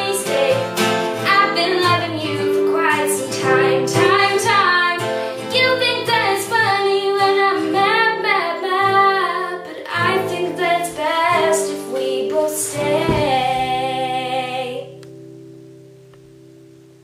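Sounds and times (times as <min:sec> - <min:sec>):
woman singing: 0:00.0 - 0:15.0
acoustic guitar strumming: 0:00.0 - 0:16.9.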